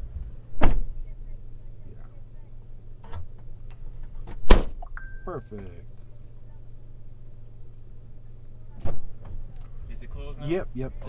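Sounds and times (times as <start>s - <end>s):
car engine idling inside cabin: 0.0s - 11.0s
loud sharp thump: 0.6s - 0.9s, 4.3s - 4.8s, 8.8s - 9.4s.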